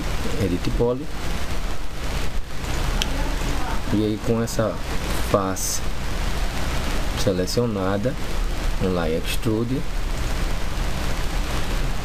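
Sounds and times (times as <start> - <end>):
recording hiss: 0.0 - 12.0.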